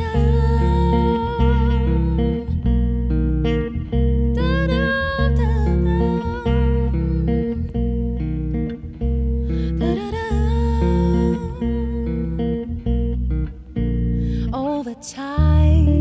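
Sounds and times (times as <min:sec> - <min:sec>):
bass guitar chords: 0:00.0 - 0:14.8, 0:15.4 - 0:16.0.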